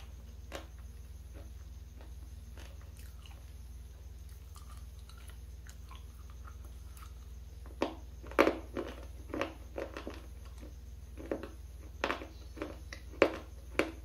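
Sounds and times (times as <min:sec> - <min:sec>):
loud crunching chews: 0:00.0 - 0:03.6, 0:04.2 - 0:14.0
chewing clicks: 0:04.3 - 0:10.7.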